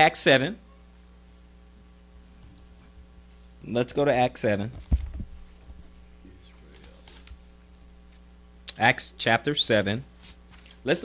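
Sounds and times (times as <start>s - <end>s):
low electrical hum: 0.0s - 11.0s
pages being turned: 6.6s - 7.4s.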